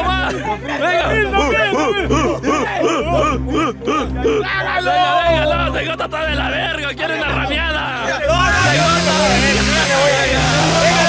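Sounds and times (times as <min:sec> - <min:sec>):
excited overlapping voices: 0:00.0 - 0:11.0.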